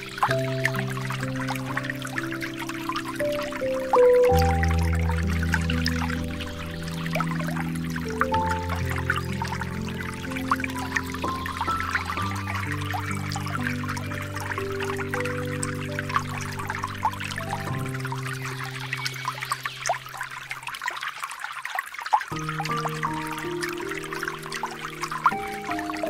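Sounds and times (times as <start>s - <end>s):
ambient music with sustained chords: 0.0s - 21.0s, 22.3s - 26.0s
trickling water: 0.0s - 26.0s.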